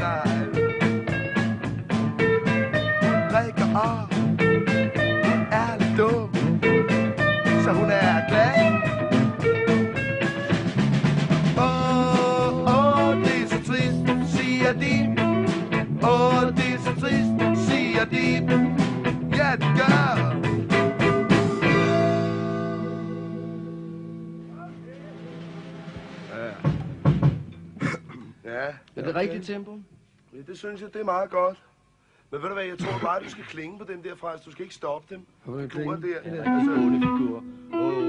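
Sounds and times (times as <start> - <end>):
drum kit hits: 0.0 - 23.4, 24.4 - 28.1
rock band playing: 0.0 - 27.8, 36.3 - 38.0.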